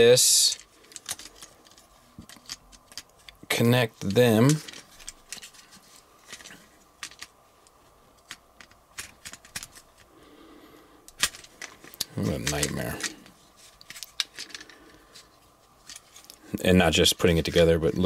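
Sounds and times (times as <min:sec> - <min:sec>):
plastic toy parts clicking: 0:00.6 - 0:03.4, 0:06.3 - 0:07.3, 0:08.2 - 0:10.1, 0:11.1 - 0:16.4.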